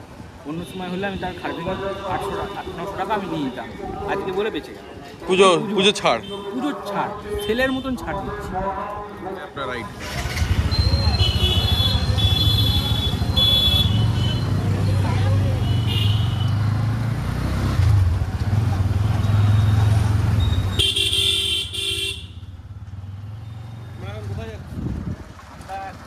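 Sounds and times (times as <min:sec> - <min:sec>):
road noise: 0:00.0 - 0:26.0
motorcycle engine running: 0:10.0 - 0:14.2
vehicle horn honking: 0:11.0 - 0:14.6, 0:15.6 - 0:16.5, 0:20.8 - 0:22.5.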